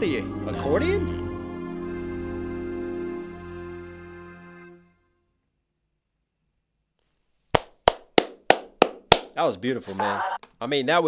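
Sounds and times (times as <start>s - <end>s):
person clapping hands: 7.6s - 9.4s.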